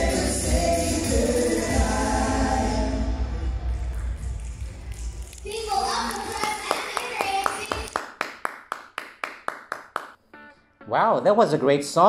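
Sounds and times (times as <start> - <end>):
pop song with bass beat: 0.0 - 3.7
hand claps: 4.4 - 10.2
people cheering: 4.8 - 8.0.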